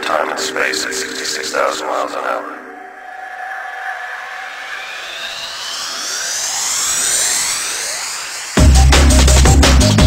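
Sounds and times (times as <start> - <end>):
rising synth sweep: 1.0 - 10.0.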